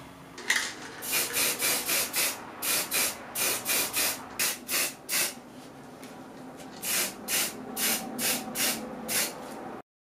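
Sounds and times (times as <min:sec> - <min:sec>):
spray paint can hissing: 0:01.0 - 0:05.4, 0:06.8 - 0:09.4.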